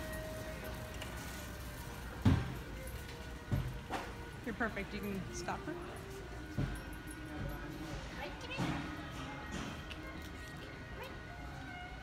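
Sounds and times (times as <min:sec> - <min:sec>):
faint music: 0:00.0 - 0:12.0
store background hum: 0:00.0 - 0:12.0.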